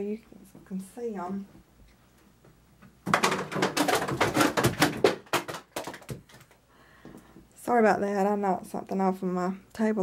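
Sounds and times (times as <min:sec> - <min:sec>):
objects clattering off table: 0:03.1 - 0:06.5.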